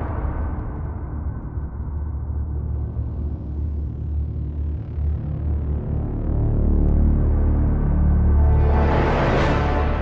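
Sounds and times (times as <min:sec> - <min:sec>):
deep rumbling drone: 0:00.0 - 0:10.0.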